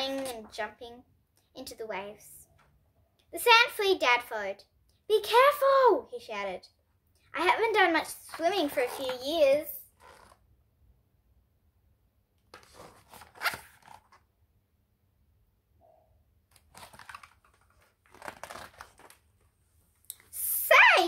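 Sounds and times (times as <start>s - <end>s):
book pages rustling: 12.5s - 14.3s, 16.5s - 20.0s.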